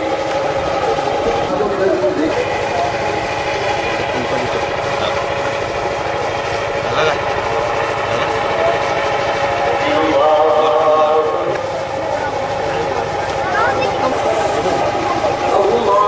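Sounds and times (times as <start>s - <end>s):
man chanting prayer over loudspeakers: 9.6s - 12.0s, 15.4s - 16.0s.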